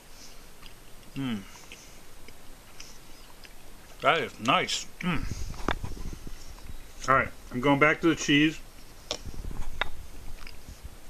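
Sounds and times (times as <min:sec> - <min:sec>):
chewing: 0:00.0 - 0:07.1, 0:08.7 - 0:11.0.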